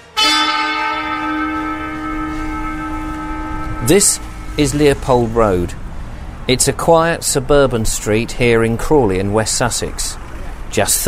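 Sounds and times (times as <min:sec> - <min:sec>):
struck bell ringing: 0:00.0 - 0:06.4.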